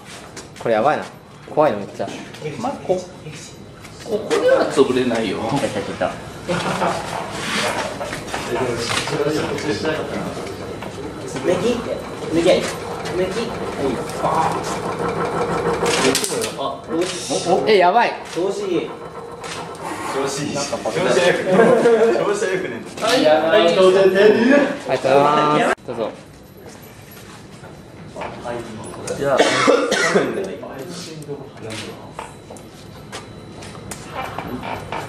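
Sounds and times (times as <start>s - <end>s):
people talking: 0.7s - 7.8s, 8.4s - 14.9s, 15.9s - 18.9s, 19.8s - 26.2s, 28.2s - 32.3s
shaking table machine hum: 2.6s - 25.5s, 31.8s - 35.0s.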